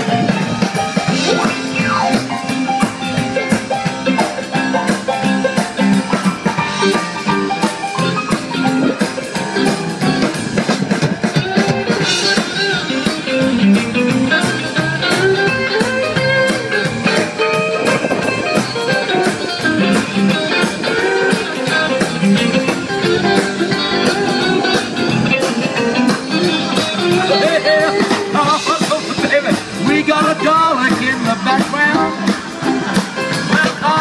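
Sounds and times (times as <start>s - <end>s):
drum kit beat: 0.0s - 34.0s
electric guitar: 0.0s - 34.0s
electric keyboard: 0.0s - 34.0s
rock and roll band playing: 0.0s - 34.0s
upright double bass: 0.0s - 34.0s.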